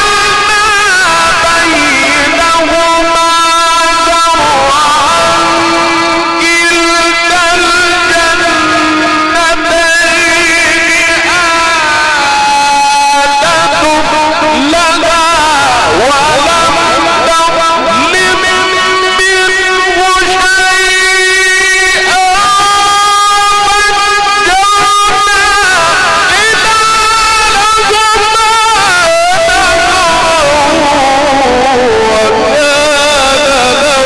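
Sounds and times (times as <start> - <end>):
man chanting melodically: 0.0 - 34.0.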